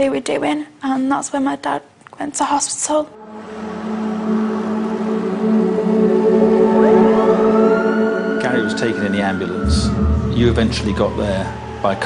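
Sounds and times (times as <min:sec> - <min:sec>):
low droning background music: 0:03.1 - 0:12.0
ambulance siren wailing: 0:03.6 - 0:12.0.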